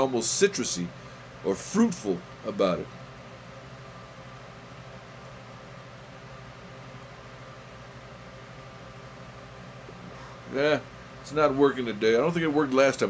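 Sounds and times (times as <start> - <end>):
electric fan running: 0.0 - 13.0.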